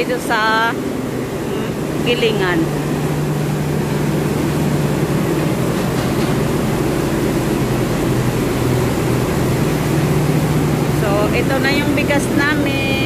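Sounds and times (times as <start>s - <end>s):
rice mill machinery droning: 0.0s - 13.0s.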